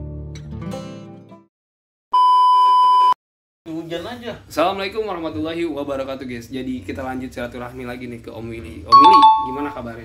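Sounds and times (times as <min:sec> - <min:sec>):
electronic test tone beep: 0:09.0 - 0:09.8.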